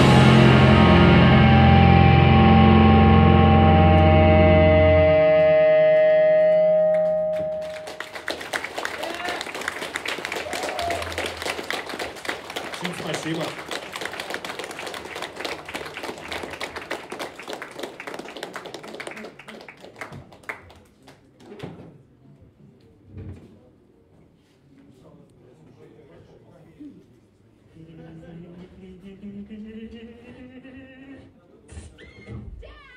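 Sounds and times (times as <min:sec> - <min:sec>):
guitar and bass chord ringing: 0:00.0 - 0:08.0
audience clapping: 0:05.4 - 0:21.7.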